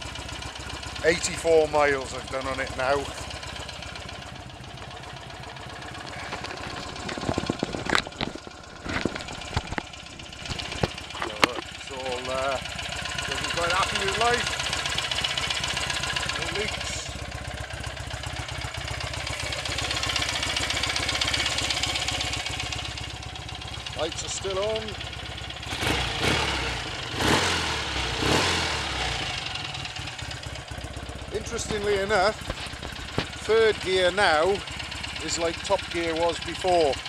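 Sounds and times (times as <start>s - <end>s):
motorcycle engine idling: 0.0s - 37.0s
sharp knocks and clicks: 6.0s - 11.7s, 31.6s - 33.4s.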